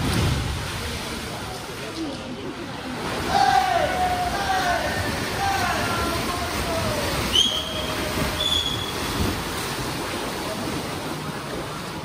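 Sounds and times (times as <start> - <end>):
swimmers splashing: 0.0 - 12.0
spectators shouting and cheering: 3.1 - 8.9.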